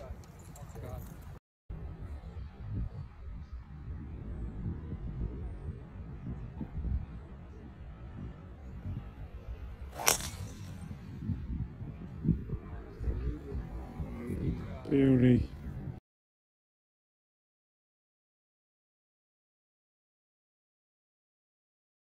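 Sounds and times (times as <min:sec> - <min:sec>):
golf club striking ball: 0:10.0 - 0:10.9.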